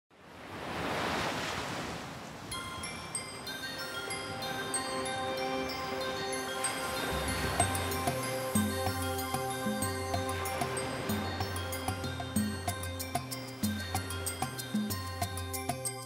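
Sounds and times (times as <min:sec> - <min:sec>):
surf washing on a beach: 0:00.2 - 0:12.4
light music with repeated notes: 0:02.5 - 0:16.0.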